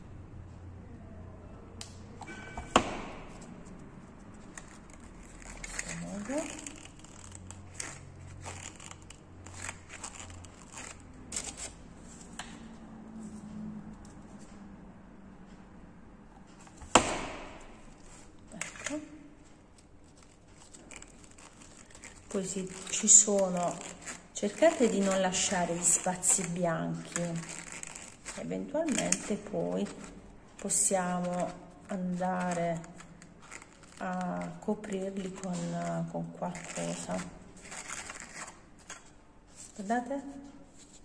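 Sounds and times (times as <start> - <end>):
rustling and crinkling: 3.1 - 12.6, 17.6 - 41.0.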